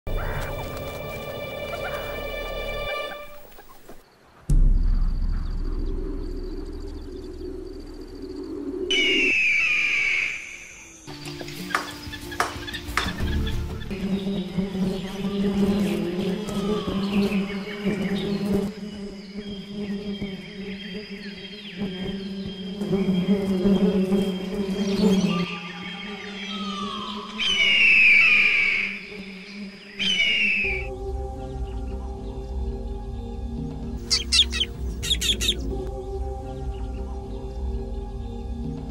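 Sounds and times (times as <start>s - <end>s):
background music with low drone: 0.1s - 3.5s, 4.5s - 8.9s, 11.0s - 38.9s
bird of prey screaming: 34.0s - 35.6s.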